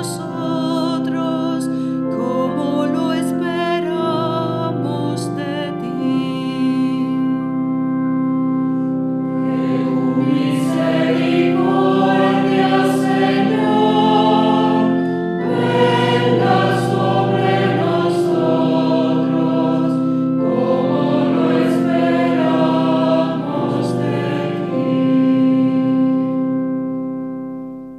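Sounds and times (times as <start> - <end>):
choir singing held chords: 8.6 - 27.5.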